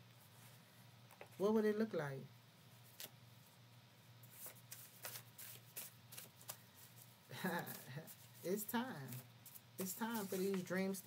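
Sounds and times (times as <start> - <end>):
cards being shuffled: 2.9 - 3.2, 4.3 - 10.7.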